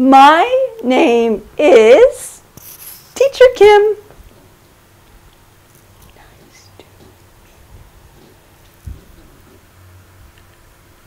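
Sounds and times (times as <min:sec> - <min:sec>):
low steady hum: 0:00.0 - 0:11.0
soft hisses and clicks: 0:02.5 - 0:03.4, 0:05.1 - 0:07.0
faint whispering: 0:06.0 - 0:07.0.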